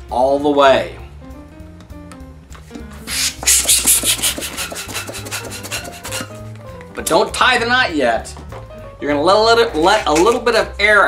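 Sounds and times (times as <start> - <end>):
soft background music: 0.0 - 11.0
hand balloon pump rasping: 3.1 - 6.5.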